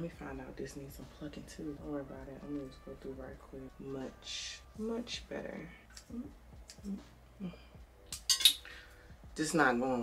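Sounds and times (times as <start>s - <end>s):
metal tweezers clinking: 8.1s - 8.7s.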